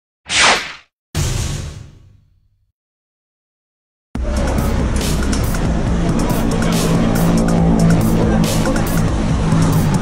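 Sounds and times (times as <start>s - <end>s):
short whoosh: 0.3s - 1.8s.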